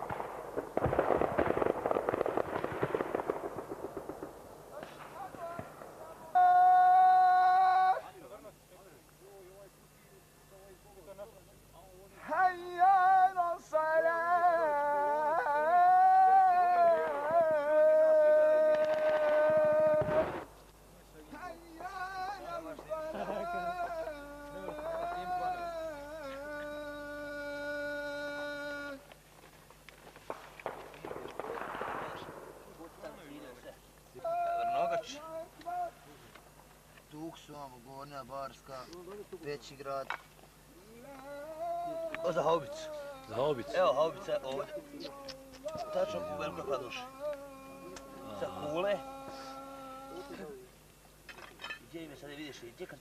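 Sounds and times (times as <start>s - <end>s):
person singing long high notes: 5.4s - 8.1s, 12.2s - 20.4s, 21.7s - 29.2s, 40.7s - 43.8s, 44.7s - 50.7s
person humming drawn-out vowel: 23.2s - 29.1s, 40.7s - 43.4s, 44.8s - 50.7s.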